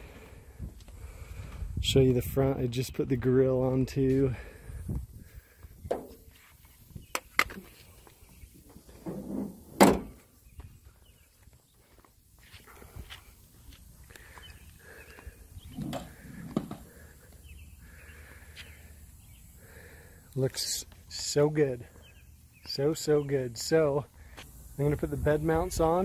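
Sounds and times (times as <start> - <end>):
faint outdoor background: 0.0 - 26.0
loud thump: 9.8 - 10.2.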